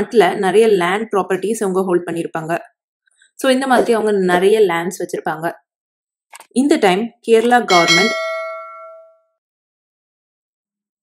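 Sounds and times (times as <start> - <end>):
metallic ding: 7.7 - 9.3.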